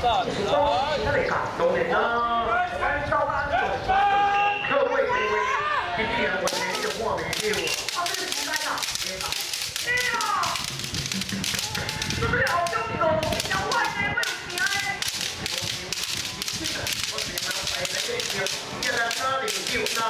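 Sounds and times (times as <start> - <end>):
children shouting: 4.0 - 7.1, 11.5 - 12.2
bamboo swords clacking: 6.4 - 20.0.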